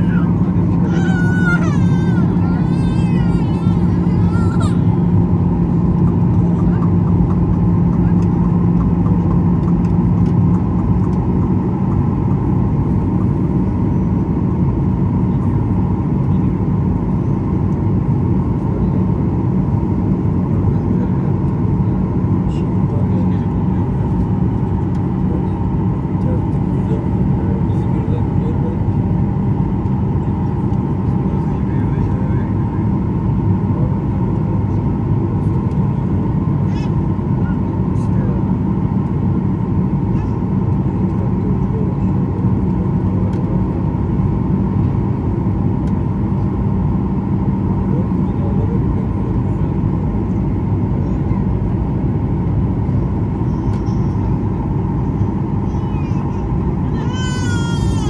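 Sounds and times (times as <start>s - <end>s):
faint high engine whine: 0.0s - 58.0s
jet cabin engine rumble: 0.0s - 58.0s.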